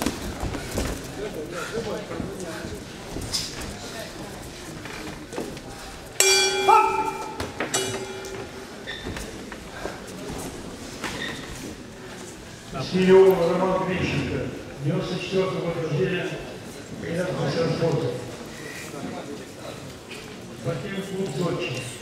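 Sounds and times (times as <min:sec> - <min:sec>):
voices in a hall: 0:00.0 - 0:22.0
boxing ring bell ringing: 0:06.2 - 0:08.9.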